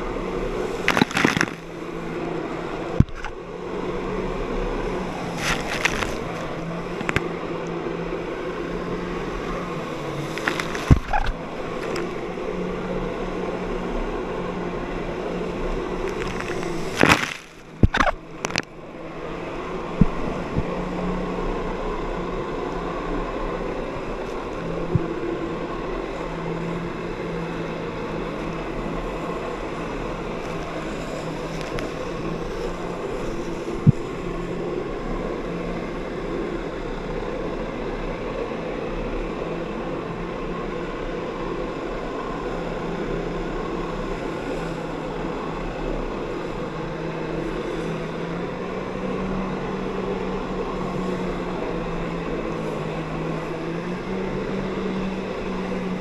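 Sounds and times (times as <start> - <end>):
watercraft engine droning: 0.0 - 56.0.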